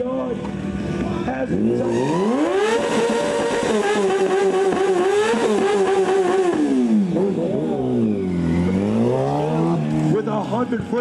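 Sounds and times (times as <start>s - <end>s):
motorcycle engine revving: 1.4s - 10.7s
tire spinning on pavement: 1.5s - 11.0s.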